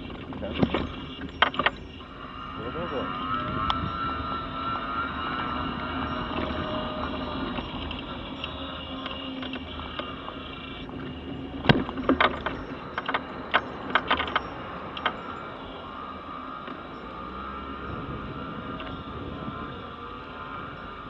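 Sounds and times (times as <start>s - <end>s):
scooter knocking onto pavement: 0.0s - 2.0s, 10.9s - 15.4s
electric motor whining: 0.0s - 21.0s
low hum: 0.0s - 21.0s.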